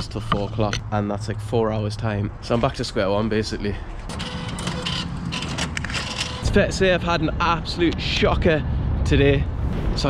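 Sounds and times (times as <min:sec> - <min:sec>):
cash machine note feed whirring: 0:04.1 - 0:06.5.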